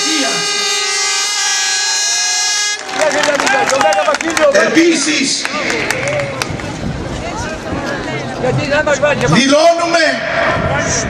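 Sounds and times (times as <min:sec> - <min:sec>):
horn blast: 0:00.0 - 0:03.6.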